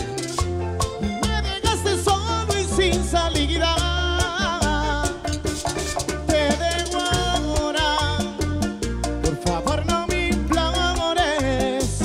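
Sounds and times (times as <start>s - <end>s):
live band playing bachata: 0.0s - 12.0s.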